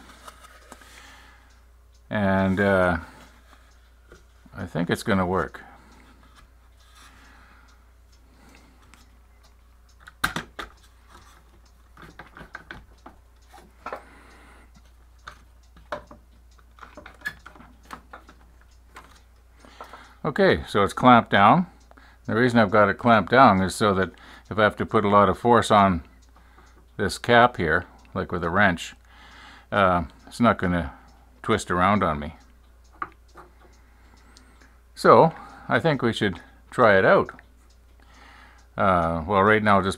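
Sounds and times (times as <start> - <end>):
low steady hum: 0.0 - 39.9.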